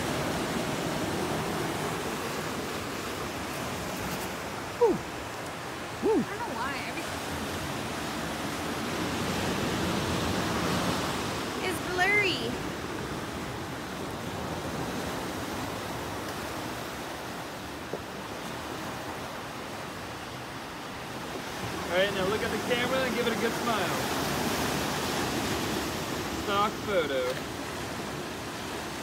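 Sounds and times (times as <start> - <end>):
ocean surf breaking: 0.0 - 29.0.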